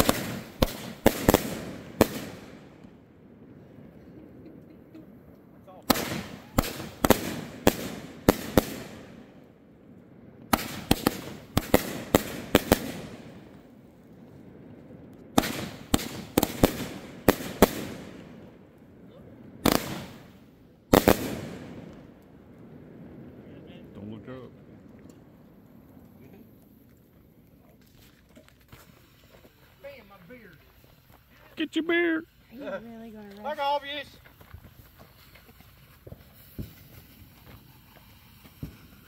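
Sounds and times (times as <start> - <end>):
fireworks banging: 0.0 - 39.0.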